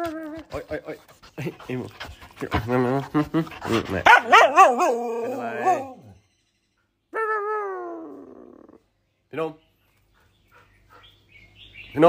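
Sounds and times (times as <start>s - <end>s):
dog howling: 4.1s - 6.2s, 7.2s - 8.8s.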